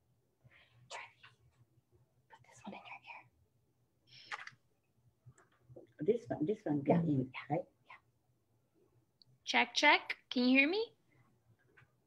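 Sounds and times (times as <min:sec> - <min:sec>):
faint whispered speech: 0:02.3 - 0:03.3.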